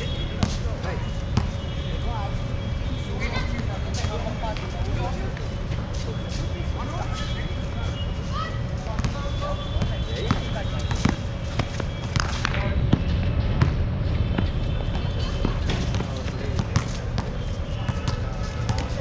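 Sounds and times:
basketball bouncing on hard court: 0.4 - 0.6, 9.8 - 19.0
players' footsteps: 3.5 - 19.0
distant shouts: 7.0 - 11.0.

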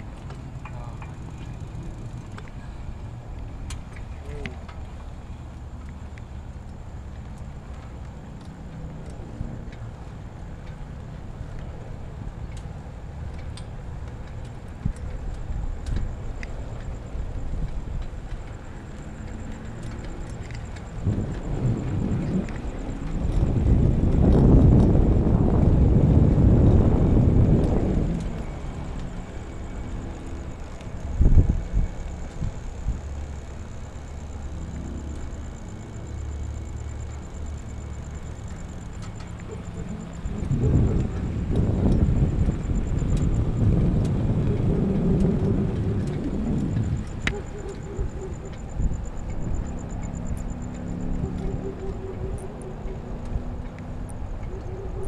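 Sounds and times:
bike tyre noise: 0.0 - 55.0
wind buffeting microphone: 0.0 - 55.0.

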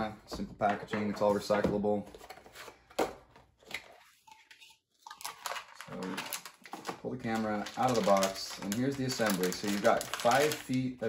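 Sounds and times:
cardboard and plastic rustling: 0.4 - 10.9.

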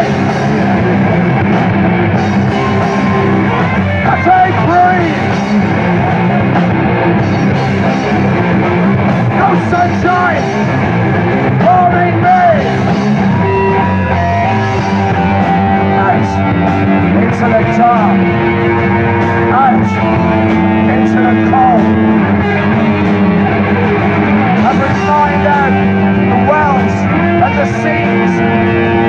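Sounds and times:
bass guitar: 0.0 - 29.0
drums and cymbals: 0.0 - 29.0
electric guitar bending notes: 0.0 - 29.0.

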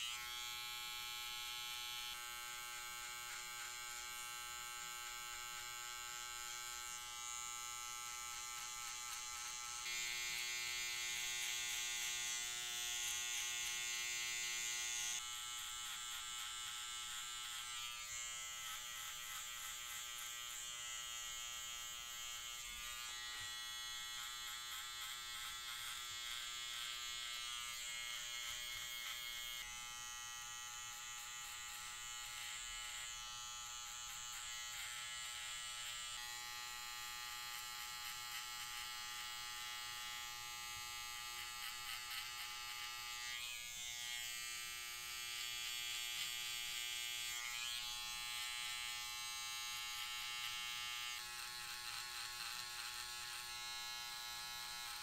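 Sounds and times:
hair trimmer buzzing: 0.0 - 55.0.

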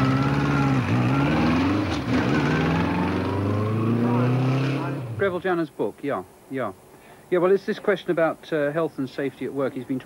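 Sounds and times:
motorcycle engine accelerating: 0.0 - 5.2.

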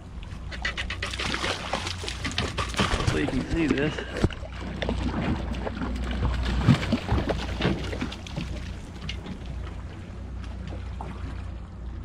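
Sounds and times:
fish splashing at the surface: 0.7 - 8.8
low rumble: 1.6 - 12.0.

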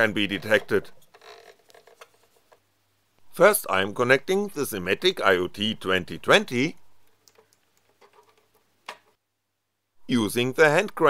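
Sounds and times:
low steady hum: 2.8 - 7.3.

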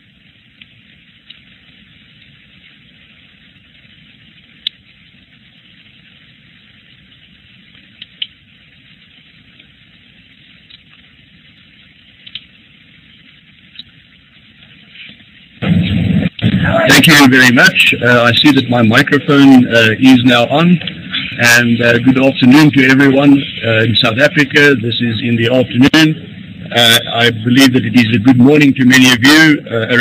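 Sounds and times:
faint clicks: 0.6 - 2.4, 4.6 - 4.8, 7.6 - 8.4, 10.6 - 11.1, 12.2 - 12.6, 13.7 - 14.0
phone line hiss: 1.0 - 30.0
loud microphone burst: 15.0 - 30.0.

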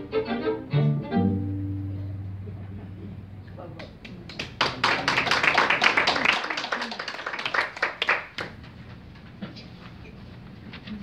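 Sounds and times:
audience applause: 4.3 - 8.6.

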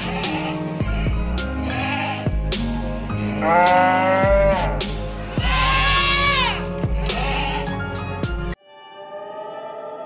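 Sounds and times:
music with regular beat: 2.3 - 3.0, 3.6 - 8.6
cow lowing: 3.2 - 5.0.

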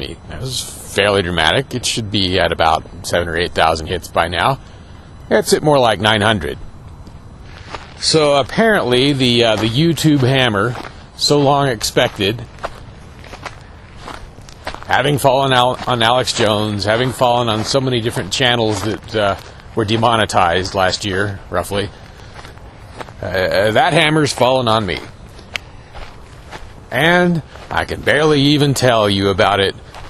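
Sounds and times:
man speaking: 0.0 - 6.7, 7.9 - 12.6, 14.6 - 22.1, 23.2 - 25.2, 26.8 - 30.0
faint outdoor background noise: 0.0 - 30.0
soft scattered ticks: 0.0 - 30.0.

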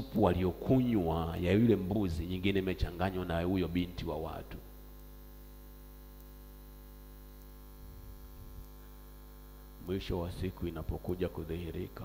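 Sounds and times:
man speaking: 0.0 - 4.6, 9.8 - 12.0
electrical mains hum: 0.0 - 12.0.

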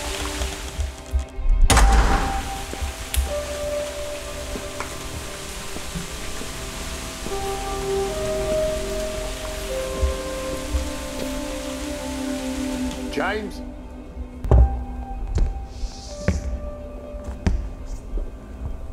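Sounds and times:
steady rainfall: 0.0 - 17.4
slow film score: 0.0 - 18.9.

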